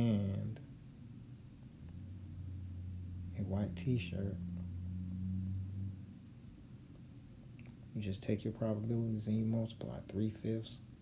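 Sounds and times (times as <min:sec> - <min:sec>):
man humming: 0:03.1 - 0:06.2.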